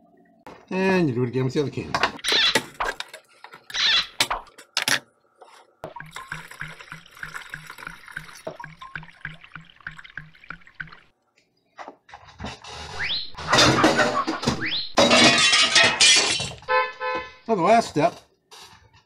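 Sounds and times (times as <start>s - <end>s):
milk glugging into jug: 5.8s - 11.1s.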